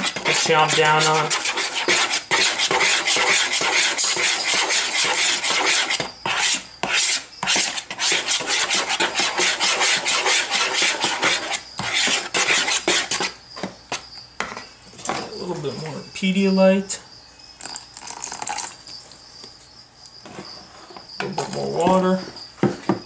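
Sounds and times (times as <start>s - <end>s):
spoon stirring in plastic bowl: 0.0s - 13.3s.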